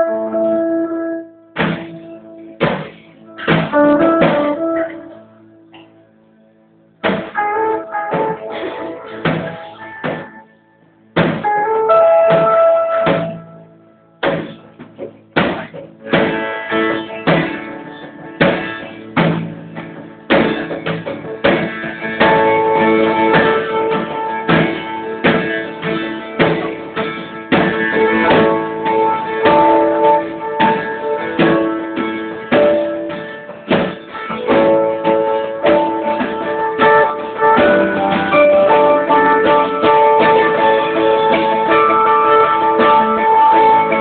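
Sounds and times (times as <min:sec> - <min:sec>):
drum kit: 0:00.0 - 0:06.0, 0:07.0 - 0:10.5, 0:11.1 - 0:13.6, 0:14.2 - 0:44.0
electric guitars: 0:00.0 - 0:44.0.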